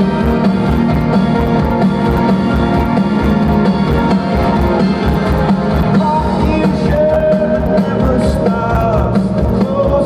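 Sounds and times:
live rock band playing: 0.0 - 10.0
regular drum beat: 0.0 - 10.0.

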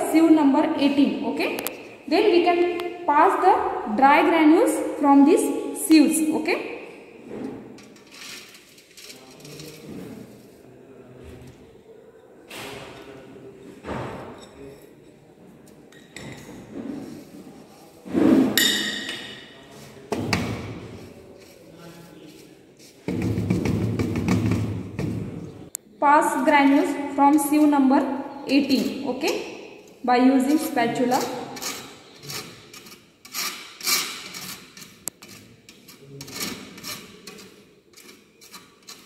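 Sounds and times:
glass dish clinking against metal: 18.6 - 19.5.

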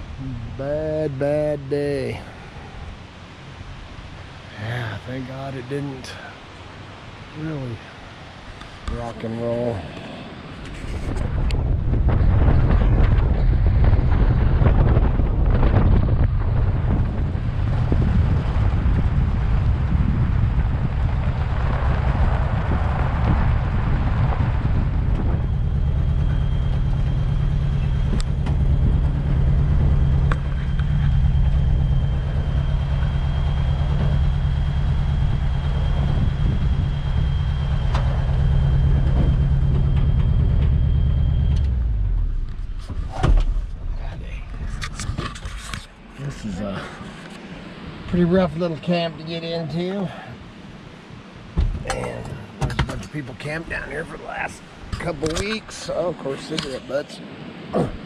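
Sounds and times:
truck engine running: 11.2 - 43.9
thin high whine: 21.4 - 51.3.

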